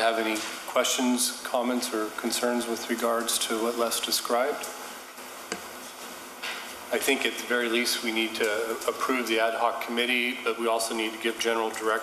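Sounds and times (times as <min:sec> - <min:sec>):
faint microphone hiss: 0:00.0 - 0:12.0
person speaking: 0:00.0 - 0:12.0.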